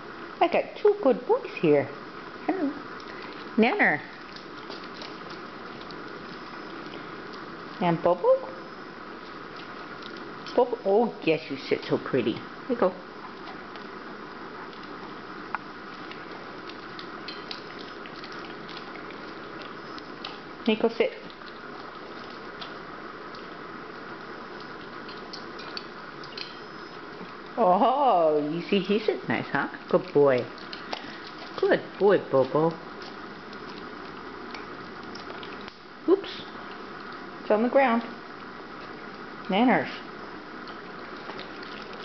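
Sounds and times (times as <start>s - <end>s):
steady hiss: 0.0s - 29.4s
dog chewing wetly: 2.9s - 7.8s, 8.6s - 10.8s, 13.1s - 27.6s, 28.6s - 37.5s, 40.3s - 42.0s.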